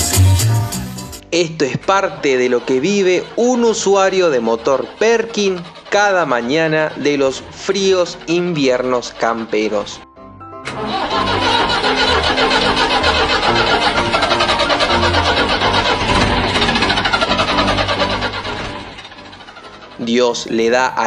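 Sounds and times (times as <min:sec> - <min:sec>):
diesel engine cranking: 0:00.0 - 0:21.0
music playing: 0:00.0 - 0:21.0.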